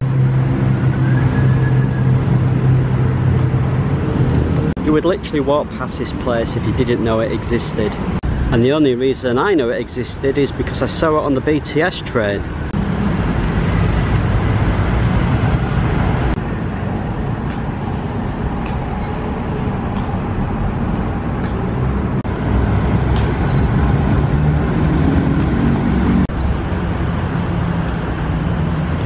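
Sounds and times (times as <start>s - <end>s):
road traffic rumble: 0.0s - 29.0s.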